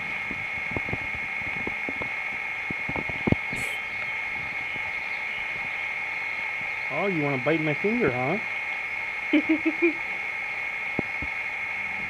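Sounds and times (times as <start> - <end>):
high-pitched drone: 0.0 - 12.0.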